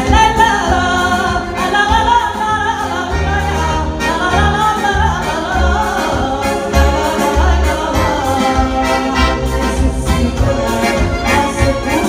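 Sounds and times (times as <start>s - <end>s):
accordion: 0.0s - 12.0s
woman singing into a microphone: 0.0s - 12.0s.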